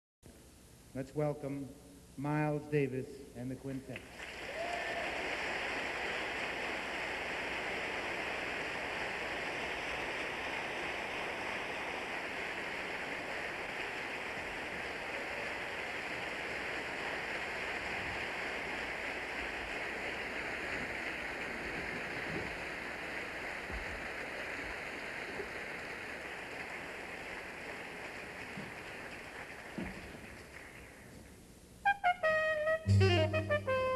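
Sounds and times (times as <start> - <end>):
audience applauding: 4.1 - 31.2.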